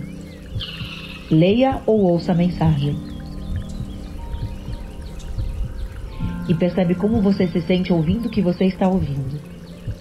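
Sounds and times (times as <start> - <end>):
ambient meditation music: 0.0 - 10.0
bird chirps: 0.0 - 10.0.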